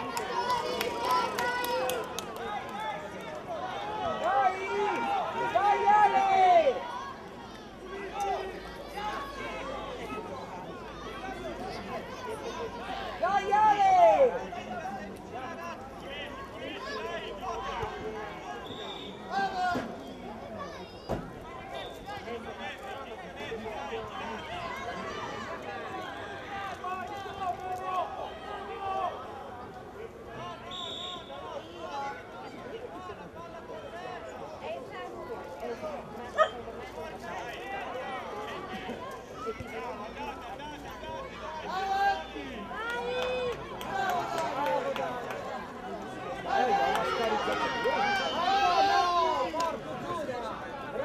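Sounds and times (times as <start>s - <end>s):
children and adults shouting: 0.0s - 32.4s, 35.8s - 51.0s
referee's whistle blast: 18.6s - 19.2s, 30.6s - 31.7s.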